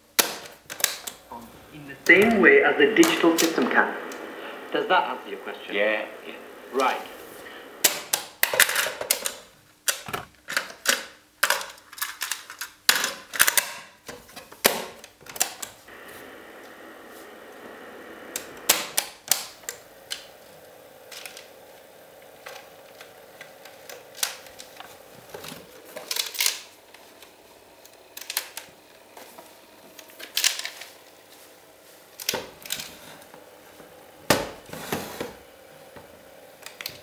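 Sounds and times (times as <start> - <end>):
faint tape transport hum: 0.1 - 12.7, 14.1 - 37.0.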